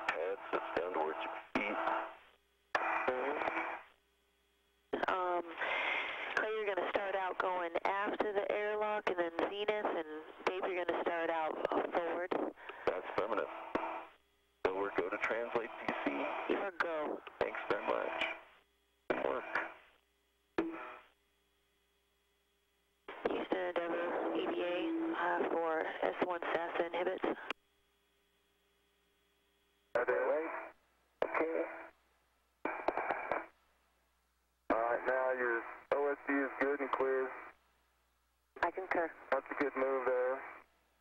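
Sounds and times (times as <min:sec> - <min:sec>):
tinny radio speech: 0:00.0 - 0:02.0, 0:02.9 - 0:03.8, 0:05.0 - 0:13.5, 0:14.7 - 0:18.4, 0:19.1 - 0:19.7, 0:23.1 - 0:27.5, 0:30.0 - 0:31.9, 0:34.7 - 0:37.5, 0:38.6 - 0:40.6
faint steady hum: 0:00.0 - 0:41.0.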